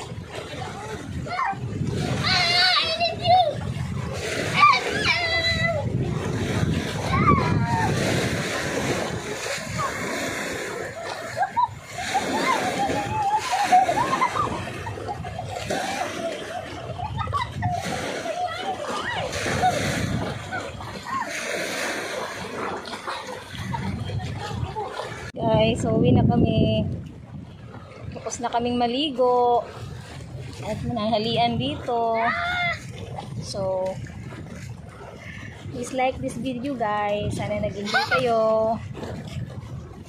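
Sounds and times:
sea water splashing: 0:00.0 - 0:40.0
voices calling out: 0:09.4 - 0:25.3.

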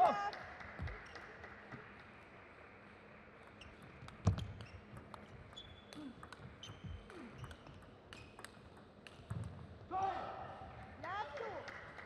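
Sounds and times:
table tennis ball clicking: 0:04.0 - 0:09.6.

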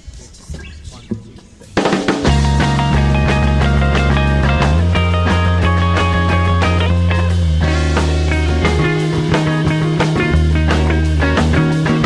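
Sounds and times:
live rock band playing: 0:01.6 - 0:12.0.

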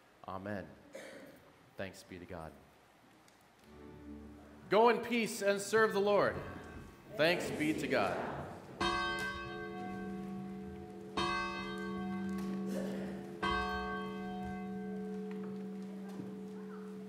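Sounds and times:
church bell ringing: 0:08.8 - 0:17.0.

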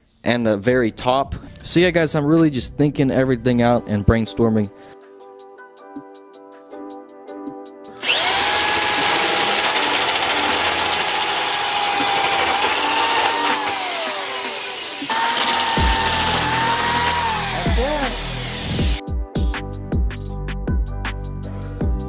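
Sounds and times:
drill whining while cutting metal: 0:08.0 - 0:19.0.

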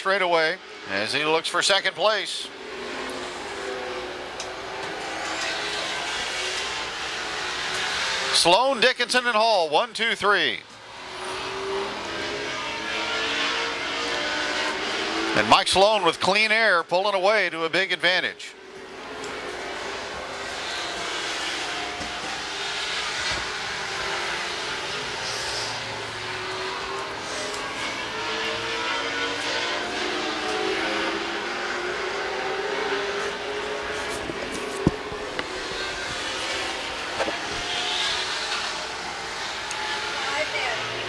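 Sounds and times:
race car engines droning: 0:00.0 - 0:41.0.

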